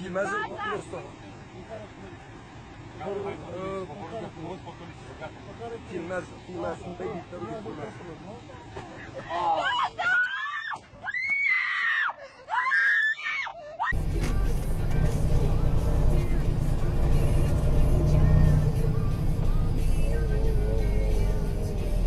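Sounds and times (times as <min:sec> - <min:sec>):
woman screaming: 0:09.3 - 0:13.9
background music: 0:14.0 - 0:22.0.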